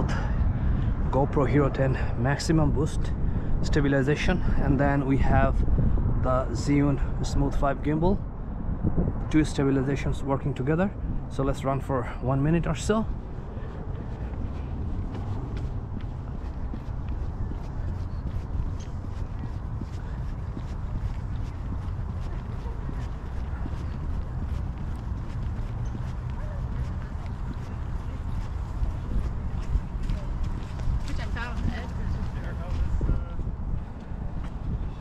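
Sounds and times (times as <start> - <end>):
wind rumbling on microphone: 0.0 - 35.0
footfalls running on pavement: 13.0 - 35.0.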